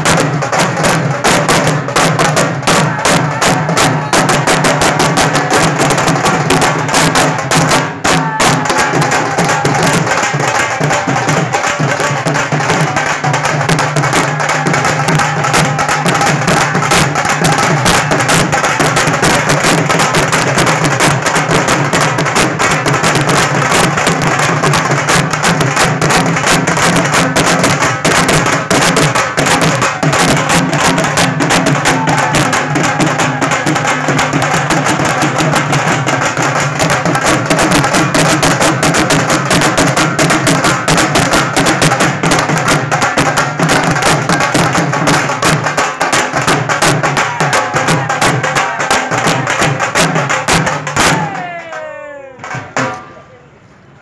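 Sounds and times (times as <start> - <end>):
drums beaten with sticks: 0.0 - 53.3.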